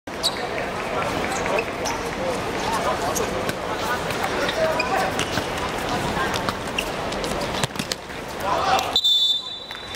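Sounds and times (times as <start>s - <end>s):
players' voices: 0.1s - 9.9s.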